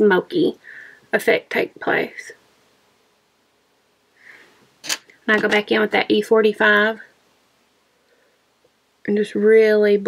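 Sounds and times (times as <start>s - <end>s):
woman breathing: 0.6s - 1.1s, 4.1s - 4.7s, 7.8s - 8.6s.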